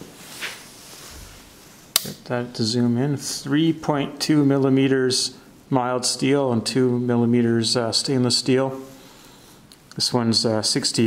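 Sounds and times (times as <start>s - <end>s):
soft rustle: 0.0s - 1.9s
sharp click: 1.9s - 2.2s.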